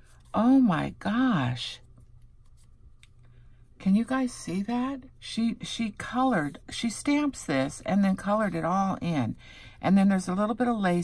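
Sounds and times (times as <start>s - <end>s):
woman speaking: 0.3s - 1.8s, 3.8s - 11.0s
soft card rustling: 1.8s - 3.3s.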